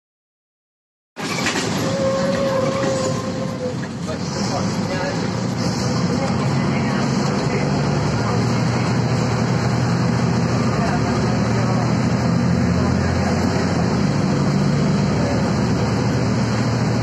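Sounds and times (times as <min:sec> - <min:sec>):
bus diesel engine running: 0:01.2 - 0:17.0.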